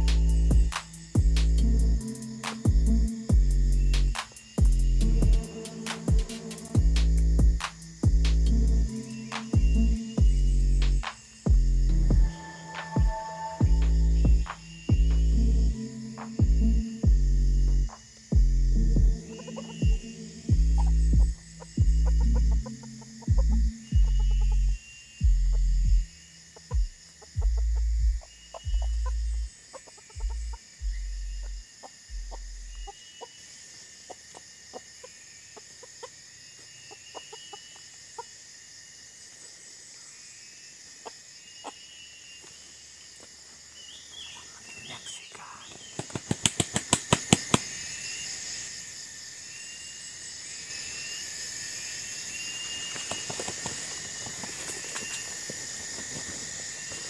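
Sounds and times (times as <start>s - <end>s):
wings beating: 0.0s - 15.2s, 45.7s - 47.8s, 52.7s - 56.4s
insect buzz: 0.0s - 57.0s
low rumbling bumps: 6.2s - 8.9s, 13.0s - 15.8s, 19.8s - 22.6s
rooster clucking: 19.2s - 20.2s.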